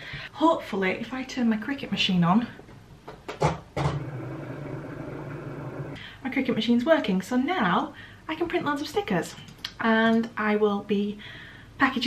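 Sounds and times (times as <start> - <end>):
machine motor humming: 3.8 - 6.0.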